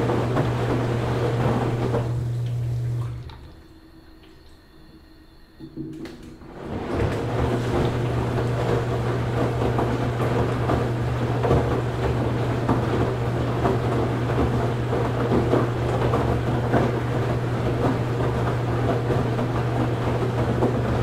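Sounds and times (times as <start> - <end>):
swishing water noise: 0.0 - 4.5, 6.4 - 21.0
washing machine hum: 0.0 - 21.0.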